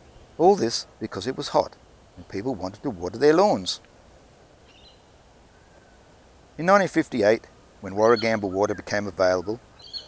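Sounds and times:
faint bird chirp: 0:00.0 - 0:02.9, 0:04.6 - 0:06.2, 0:08.0 - 0:10.0
faint outdoor background: 0:00.0 - 0:10.0.

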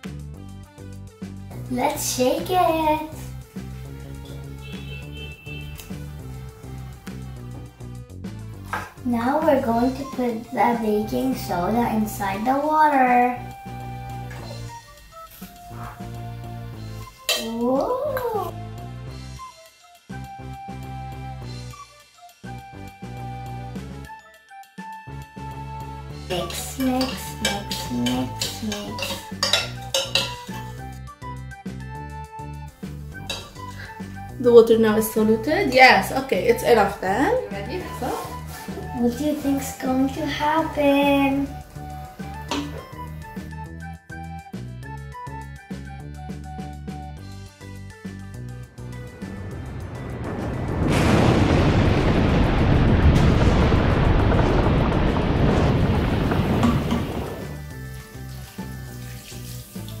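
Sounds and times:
background music with steady beat: 0:00.0 - 0:50.3
spoon clinking and scraping jug: 0:17.3 - 0:17.6, 0:26.3 - 0:30.8, 0:33.2 - 0:33.8
fizzing rushing hiss: 0:54.1 - 1:00.0.

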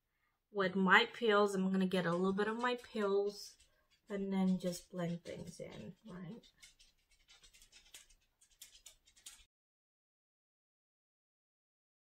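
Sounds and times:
makeup brush strokes: 0:01.6 - 0:09.5.

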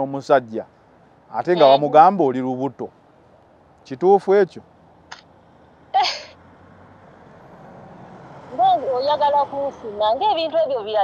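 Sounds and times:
person speaking: 0:01.3 - 0:02.3.

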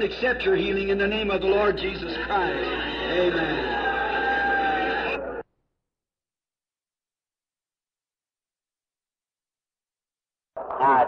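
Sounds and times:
background noise: 0:00.0 - 0:05.7, 0:10.6 - 0:11.0.

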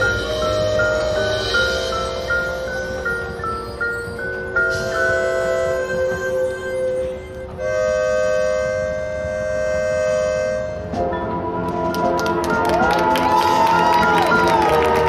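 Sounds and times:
marching band wind chords: 0:00.0 - 0:15.0.

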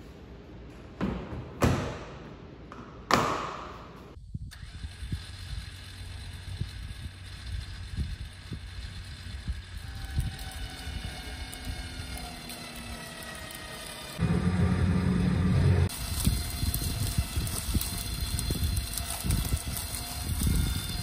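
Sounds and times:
low hum: 0:04.0 - 0:21.0
electric winch motor whine: 0:04.5 - 0:21.0
dry brush crackling and snapping: 0:15.9 - 0:21.0.

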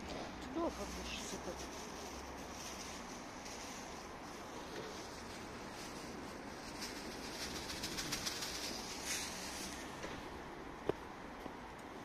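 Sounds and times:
pigeons cooing: 0:07.1 - 0:09.0.

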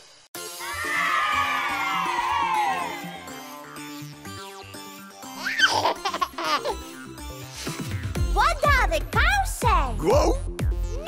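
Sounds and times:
child giggling: 0:05.4 - 0:06.8.

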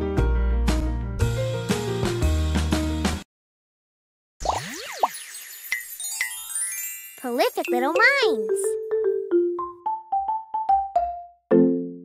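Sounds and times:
high sparkly shimmer: 0:05.4 - 0:08.0.

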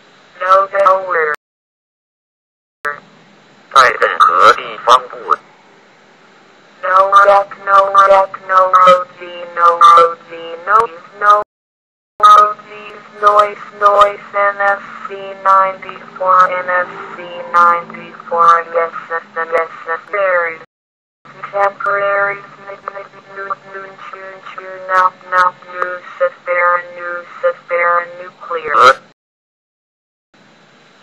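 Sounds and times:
synthesized female voice reading words: 0:00.4 - 0:01.4, 0:06.8 - 0:11.5, 0:12.2 - 0:20.7, 0:21.3 - 0:29.0.

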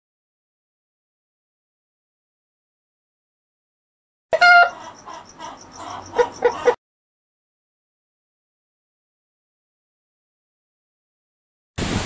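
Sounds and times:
rooster squawk: 0:04.3 - 0:06.8
soft clucking and chirping: 0:04.3 - 0:06.8.

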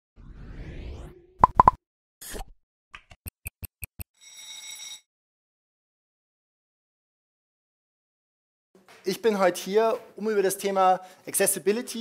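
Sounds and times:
rising whoosh: 0:00.2 - 0:01.4.

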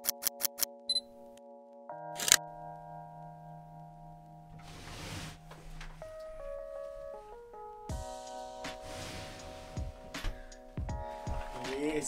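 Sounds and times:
sustained background music chord: 0:00.9 - 0:12.0
camera shutter click: 0:02.2 - 0:02.4.

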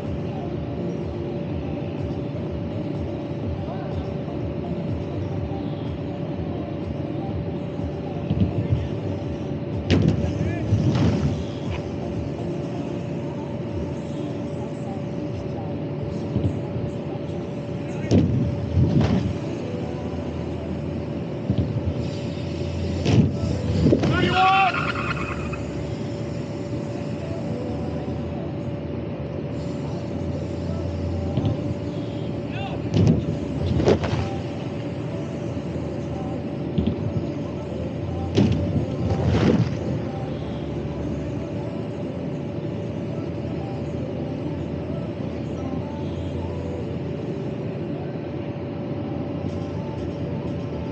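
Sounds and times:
generator machine hum: 0:00.0 - 0:50.9
steady low rumble: 0:00.0 - 0:50.9
bike landing thump on airbag: 0:09.9 - 0:11.9, 0:18.1 - 0:19.3, 0:23.0 - 0:24.2, 0:32.9 - 0:34.4, 0:38.3 - 0:39.8.

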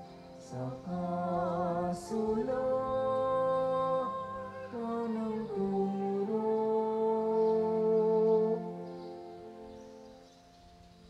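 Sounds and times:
person singing a hymn: 0:00.0 - 0:11.0
sustained accompaniment chords: 0:00.0 - 0:11.0.

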